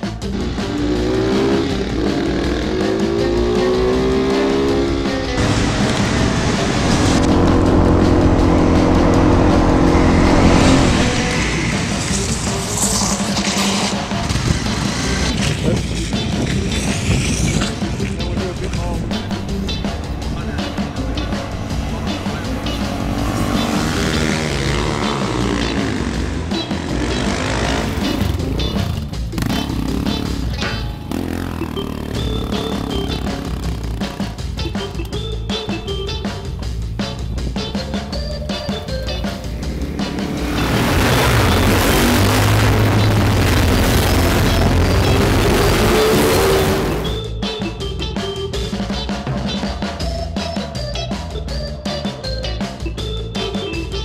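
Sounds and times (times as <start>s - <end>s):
background music: 0.0s - 54.0s
motorcycle engines revving: 0.0s - 54.0s.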